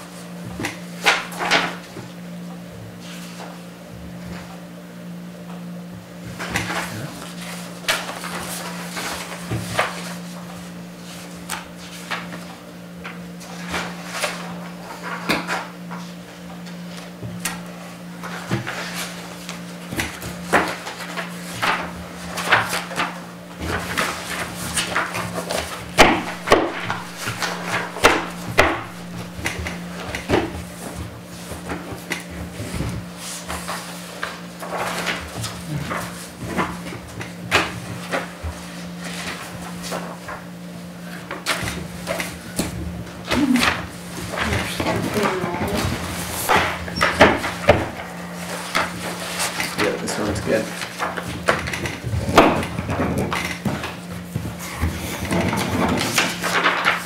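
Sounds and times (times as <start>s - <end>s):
steady low hum: 0.0s - 57.0s
paper rustling and shuffling: 3.0s - 4.5s, 6.2s - 57.0s.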